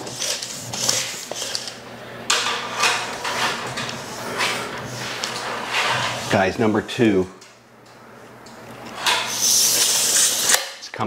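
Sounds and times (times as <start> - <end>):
tape measure blade scraping: 0.0 - 1.7, 8.9 - 10.7.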